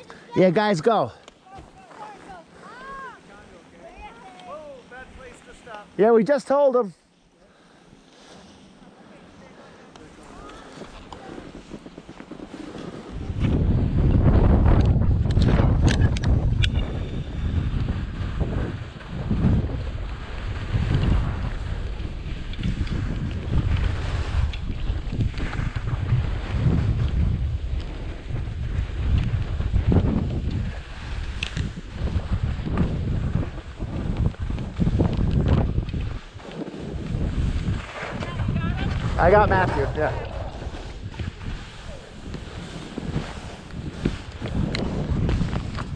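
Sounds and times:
skis scraping on snow: 0.0s - 45.9s
wind buffeting microphone: 10.3s - 45.9s.

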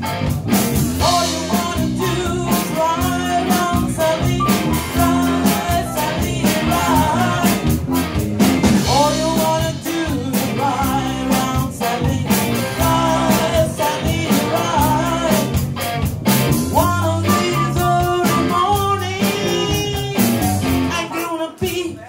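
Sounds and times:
live band playing soul music: 0.0s - 21.8s
drum kit beat: 0.0s - 22.0s.

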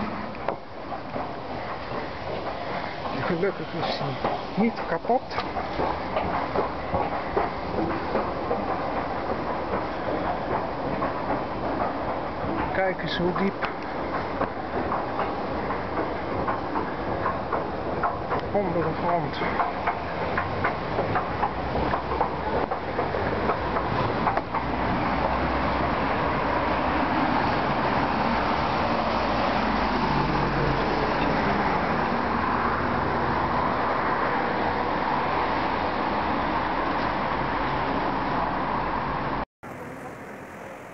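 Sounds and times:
escalator steps clicking: 0.0s - 37.4s
road traffic noise: 0.0s - 40.9s.

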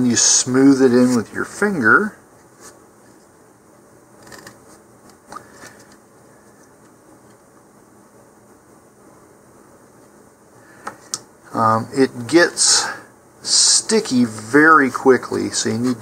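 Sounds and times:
low room noise: 0.0s - 16.0s.

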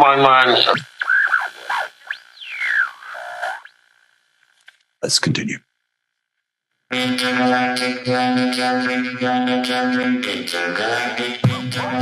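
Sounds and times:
electronic tone with whistle glide: 0.6s - 3.8s.

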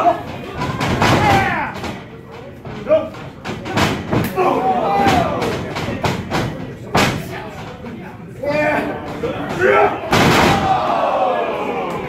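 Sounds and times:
spectators shouting: 4.2s - 5.6s, 8.8s - 12.0s
wrestling strikes and body slams: 9.7s - 11.2s.

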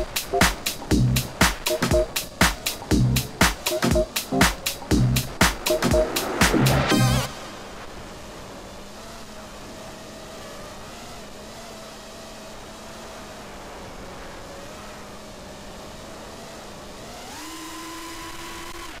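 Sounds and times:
airflow noise: 0.0s - 8.6s
quadcopter motors humming: 7.3s - 19.0s.

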